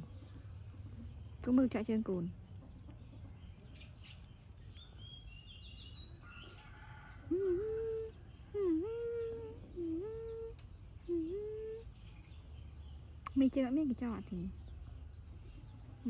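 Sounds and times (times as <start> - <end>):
birds chirping: 0.0 - 16.0.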